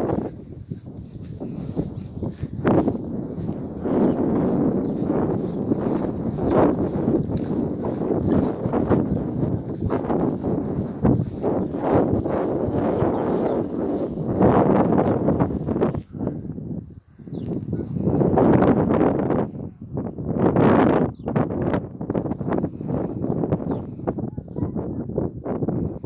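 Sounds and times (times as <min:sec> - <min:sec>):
wind on microphone: 0:00.0 - 0:26.0.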